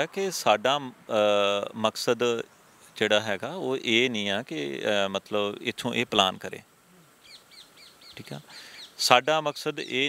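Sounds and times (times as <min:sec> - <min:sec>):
faint bird calling: 0:06.8 - 0:10.0.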